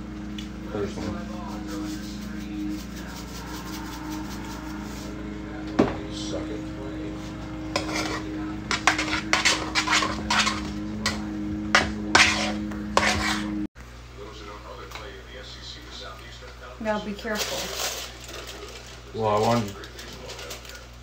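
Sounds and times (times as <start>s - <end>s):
steady low hum: 0.0s - 21.0s
utensil scraping cooking pot: 1.0s - 5.3s, 7.0s - 13.7s.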